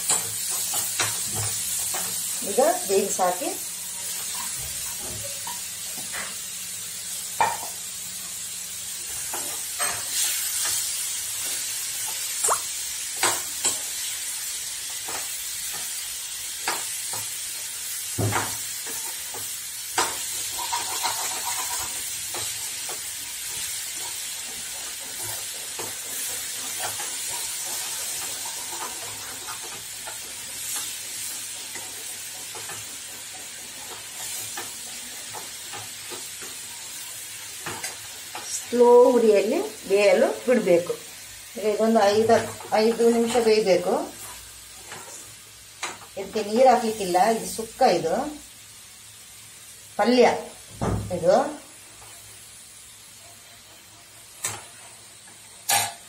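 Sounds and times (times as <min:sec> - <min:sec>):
green beans sizzling in hot oil: 0:00.0 - 0:56.0
metal spoon scraping a pan: 0:03.9 - 0:06.4, 0:09.1 - 0:12.3, 0:18.4 - 0:38.7, 0:55.6 - 0:56.0.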